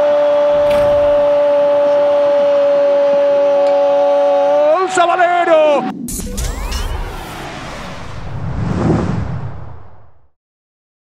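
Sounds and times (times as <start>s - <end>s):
whoosh with deep rumble: 0.5s - 3.1s, 5.9s - 10.4s.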